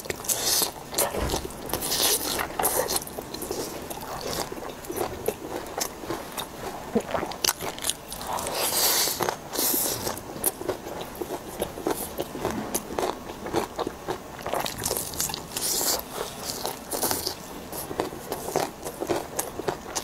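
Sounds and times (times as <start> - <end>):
crunchy chewing of fried food: 0.0 - 20.0.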